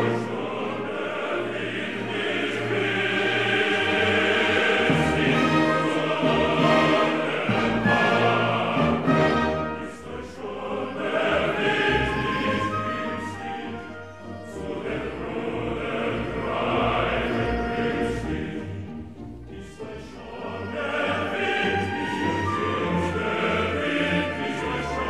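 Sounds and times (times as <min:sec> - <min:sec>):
male chorus singing: 0:00.0 - 0:25.0
orchestra: 0:00.0 - 0:25.0.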